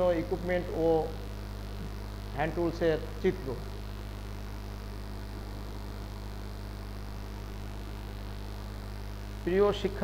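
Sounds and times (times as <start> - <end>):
low electrical mains hum: 0.0 - 10.0.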